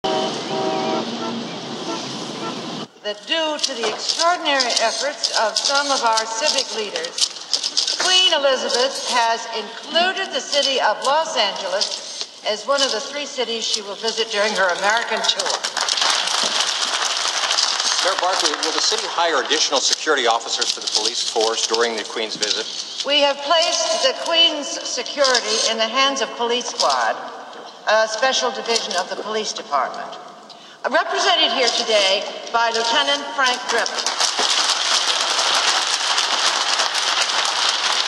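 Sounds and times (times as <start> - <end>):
car horn: 0.0 - 2.9
cars passing: 0.0 - 2.9.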